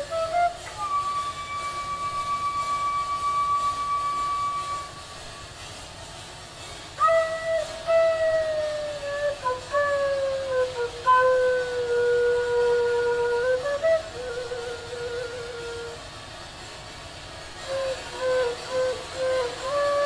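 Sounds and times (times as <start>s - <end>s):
solo flute playing slow music: 0.0s - 5.6s, 7.0s - 16.3s, 17.6s - 20.0s.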